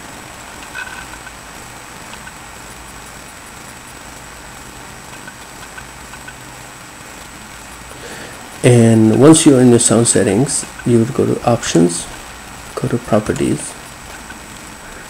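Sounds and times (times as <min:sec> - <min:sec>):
low hum and hiss: 0:00.0 - 0:15.0.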